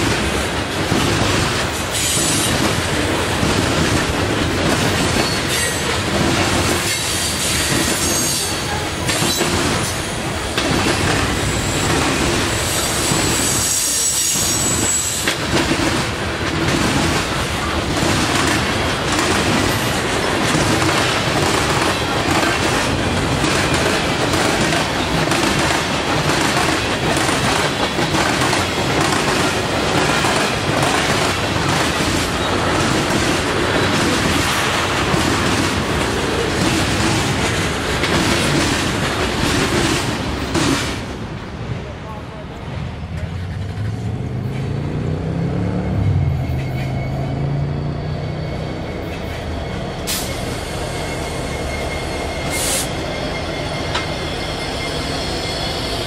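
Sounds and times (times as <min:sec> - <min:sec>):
freight train cars rumbling: 0:00.0 - 0:56.0
high-pitched wheel squeal: 0:06.9 - 0:08.9, 0:12.6 - 0:15.3, 0:45.5 - 0:56.0.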